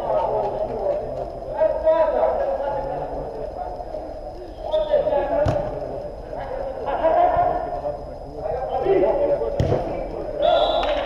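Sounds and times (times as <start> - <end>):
ball being kicked: 9.6 - 9.9
players shouting: 10.3 - 11.0.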